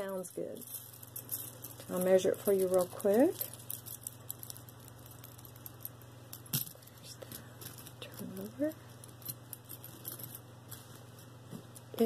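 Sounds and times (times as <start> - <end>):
metal charm bracelet clinking: 0.0 - 10.4.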